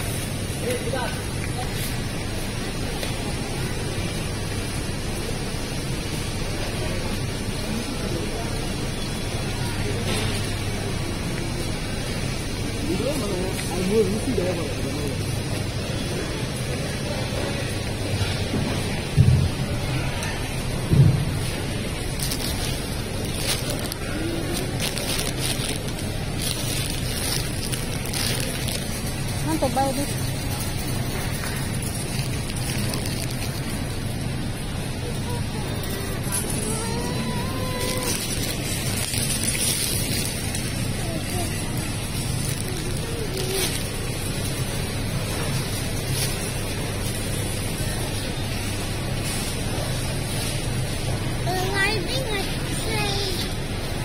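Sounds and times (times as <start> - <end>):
faint distant voices: 0.0 - 54.0
steady hum and rumble: 0.0 - 54.0
plastic rustling: 9.8 - 54.0.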